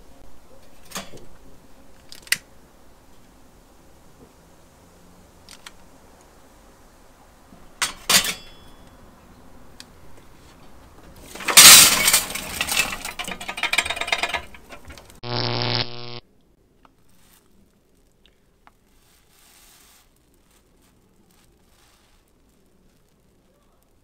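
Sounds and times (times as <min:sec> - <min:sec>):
charcoal briquettes tumbling: 0:10.3 - 0:15.2, 0:16.9 - 0:24.0
low buzzing tone: 0:15.2 - 0:16.2.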